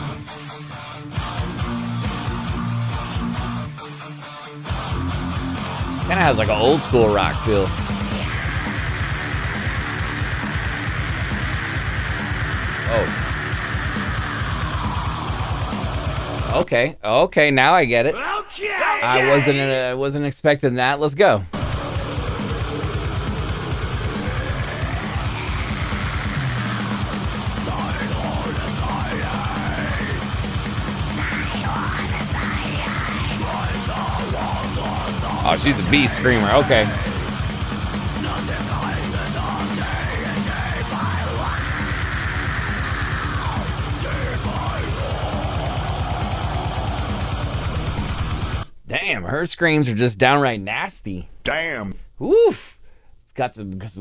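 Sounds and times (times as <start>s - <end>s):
distorted electric guitars: 0.0s - 16.6s, 19.0s - 19.8s, 21.5s - 48.9s
fast drumming: 4.8s - 16.6s, 21.5s - 48.7s
woman screaming vocals: 18.8s - 19.6s.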